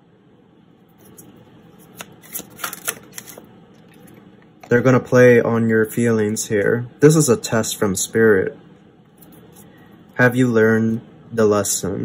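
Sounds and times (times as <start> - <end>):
cards being shuffled: 1.0 - 4.2
crisp card snaps: 1.9 - 3.5.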